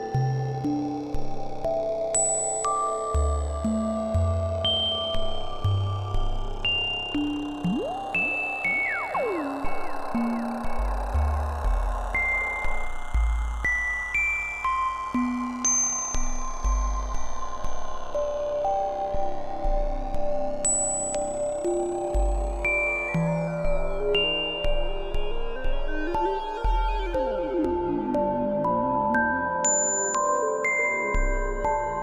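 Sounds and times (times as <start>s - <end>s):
synthesizer drone: 7.3s - 11.2s
synth pitch glides: 7.6s - 10.6s.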